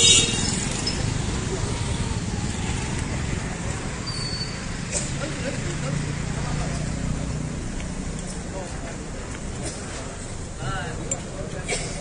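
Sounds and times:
scooters and motorcycles riding past: 0.0 - 8.5.

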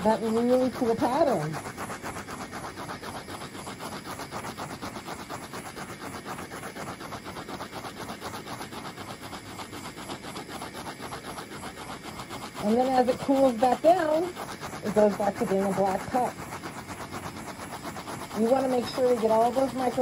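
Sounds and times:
torch flame hissing: 0.0 - 20.0.

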